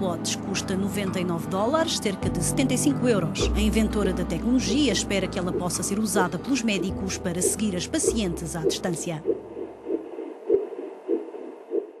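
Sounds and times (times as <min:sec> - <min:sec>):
fetal heartbeat: 0:03.2 - 0:12.0.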